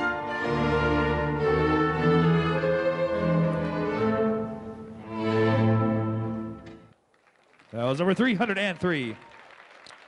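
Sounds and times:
orchestral strings playing chords: 0:00.0 - 0:06.9.

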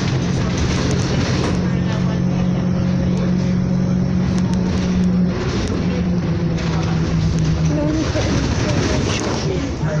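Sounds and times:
bus diesel engine drone: 0:00.0 - 0:10.0
road noise: 0:00.0 - 0:10.0.

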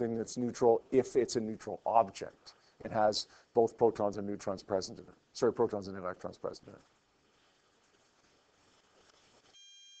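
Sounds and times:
faint room hiss: 0:00.0 - 0:10.0
high beep: 0:09.6 - 0:10.0.

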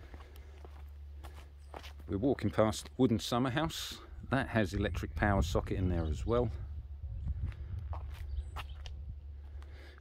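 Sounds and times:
footsteps on concrete: 0:00.0 - 0:03.0, 0:07.2 - 0:10.0.

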